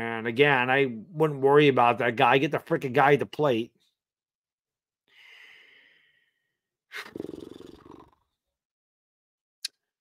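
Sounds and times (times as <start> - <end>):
man breathing in: 5.1 - 6.6.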